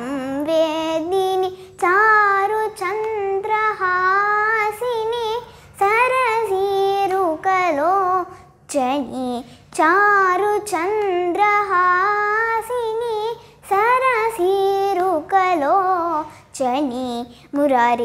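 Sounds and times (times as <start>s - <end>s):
girl singing a devotional song: 0.0s - 18.0s.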